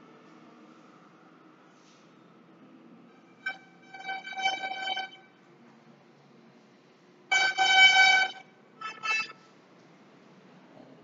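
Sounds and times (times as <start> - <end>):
vehicle horn honking: 3.3 - 5.4, 7.3 - 9.4.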